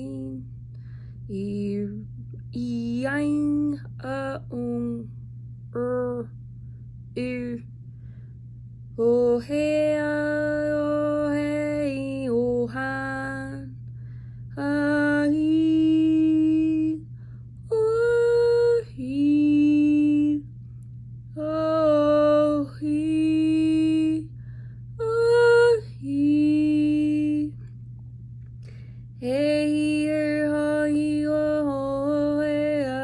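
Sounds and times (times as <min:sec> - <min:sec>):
woman singing unaccompanied: 0:00.0 - 0:00.6, 0:01.3 - 0:06.4, 0:07.1 - 0:07.7, 0:08.9 - 0:20.6, 0:21.3 - 0:27.7, 0:29.1 - 0:33.0
steady low hum: 0:00.0 - 0:33.0.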